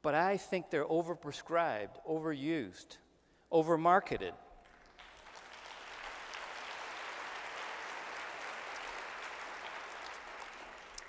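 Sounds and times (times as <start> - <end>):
audience applauding: 4.6 - 11.0.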